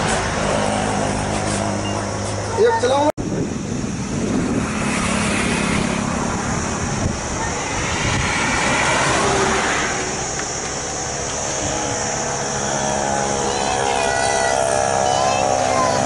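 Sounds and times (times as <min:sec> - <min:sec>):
passing vehicles: 0:00.0 - 0:16.0.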